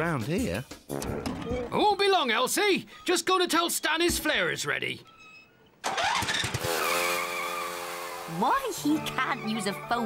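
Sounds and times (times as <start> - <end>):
quad bike engine running: 5.9 - 8.6.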